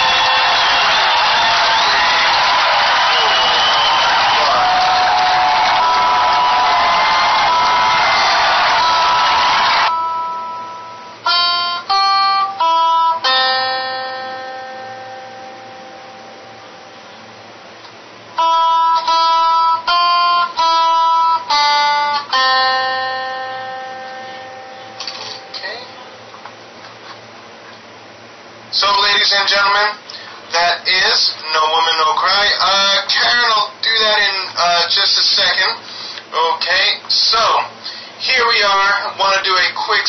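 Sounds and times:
plucked guitar melody: 9.9 - 17.2, 18.4 - 26.3.

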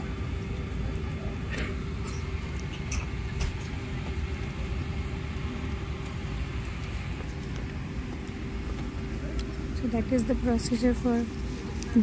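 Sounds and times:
airliner cabin rumble: 0.0 - 12.0.

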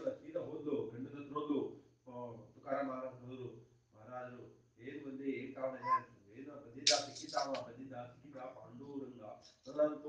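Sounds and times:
man speaking in raised voice: 0.0 - 1.0, 4.1 - 9.1.

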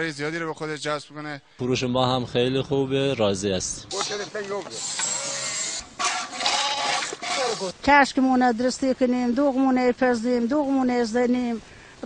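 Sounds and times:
shears rasping through wool: 4.0 - 7.8.

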